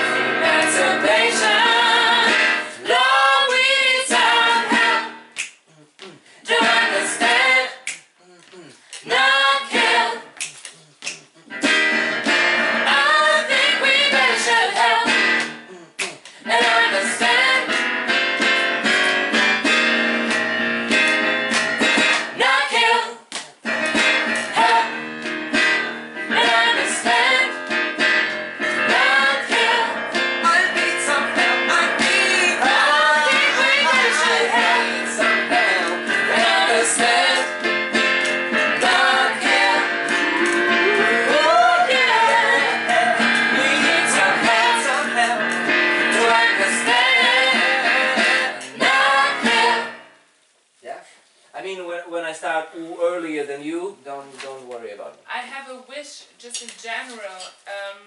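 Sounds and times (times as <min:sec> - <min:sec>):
keyboard: 0:00.0 - 0:05.4, 0:11.4 - 0:22.7, 0:23.6 - 0:50.2
women singing in harmony: 0:00.0 - 0:05.4, 0:06.5 - 0:07.8, 0:09.0 - 0:10.4, 0:12.8 - 0:15.4, 0:16.4 - 0:17.8, 0:22.3 - 0:23.3, 0:24.5 - 0:25.2, 0:25.9 - 0:27.7, 0:28.8 - 0:37.6, 0:38.6 - 0:50.1.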